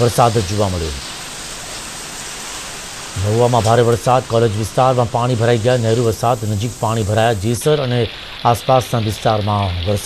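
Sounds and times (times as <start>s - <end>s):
heavy rain: 0.0s - 10.0s.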